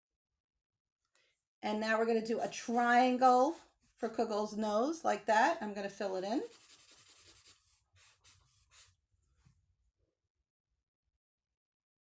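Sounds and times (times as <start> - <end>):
marker scribbling on paper: 2.3 - 3.7, 6.0 - 9.0.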